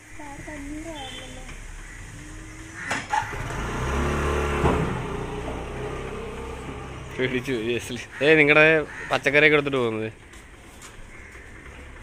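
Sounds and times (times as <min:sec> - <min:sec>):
vehicle passing: 0:00.8 - 0:09.9.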